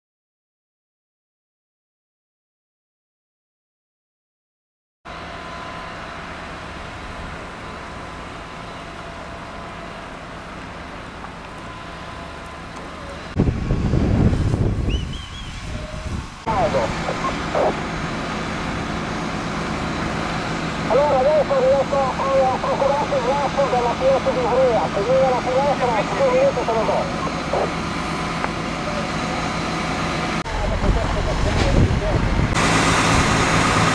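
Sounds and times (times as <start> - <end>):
fire rushing: 9.9 - 33.9
people's voices: 16.5 - 17.8, 20.9 - 27.8, 30.5 - 32.3
loud low rumble: 23.9 - 33.9.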